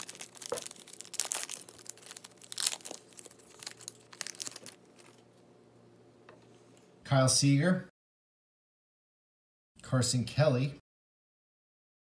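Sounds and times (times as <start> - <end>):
foil wrapper tearing and crinkling: 0.0 - 5.2.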